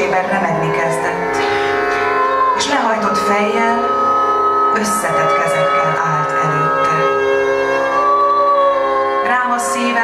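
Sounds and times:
steady drone: 0:00.0 - 0:10.0
violin holding high note: 0:00.5 - 0:09.5.

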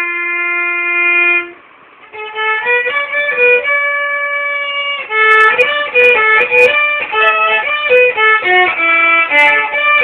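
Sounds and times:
violin long bowed note: 0:00.0 - 0:10.0.

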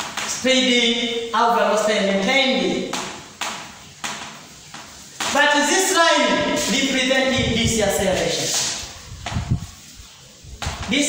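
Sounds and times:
chalk tapping on blackboard: 0:00.0 - 0:00.4, 0:02.8 - 0:05.9, 0:08.2 - 0:09.7, 0:10.6 - 0:11.0.

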